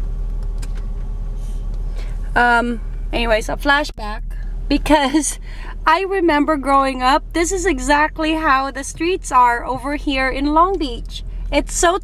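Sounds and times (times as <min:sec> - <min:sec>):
road noise: 0:00.0 - 0:12.0
truck engine rumble: 0:00.0 - 0:12.0.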